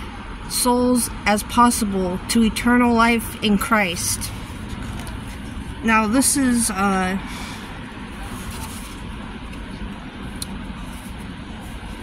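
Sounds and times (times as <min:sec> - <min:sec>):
low vehicle rumble in car: 0:00.0 - 0:12.0.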